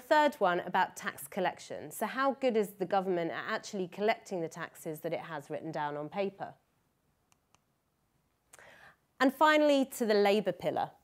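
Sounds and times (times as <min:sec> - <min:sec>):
short faint breath: 0:08.6 - 0:09.0.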